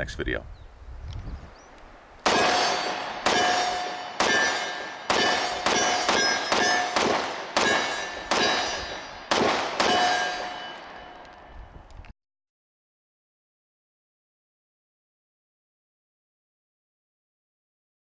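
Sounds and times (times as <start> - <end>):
pistol shots ringing: 2.2 - 11.6.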